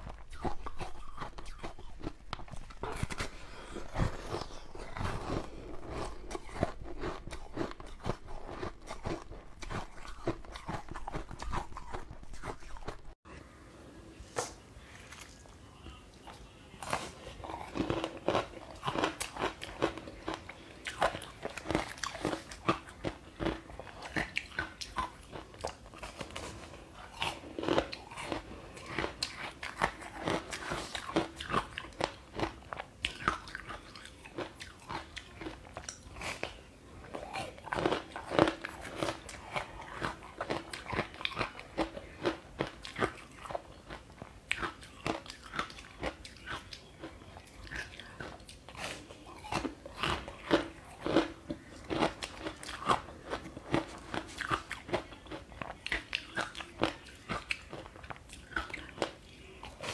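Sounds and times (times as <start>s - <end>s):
crunchy biting and chewing: 0.0s - 13.2s, 16.2s - 59.9s.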